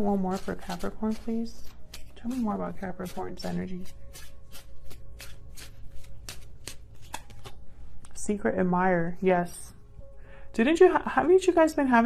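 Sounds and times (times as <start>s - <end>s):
cards being shuffled: 0.3s - 7.7s.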